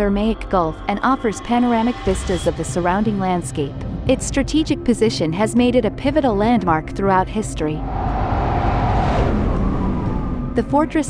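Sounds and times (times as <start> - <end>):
whoosh transition effect: 7.8 - 10.6.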